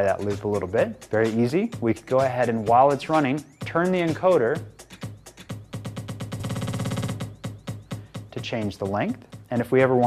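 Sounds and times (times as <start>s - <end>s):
rapid stutter of beat repeats: 0.0s - 8.4s
electronic dance beat: 0.0s - 10.0s.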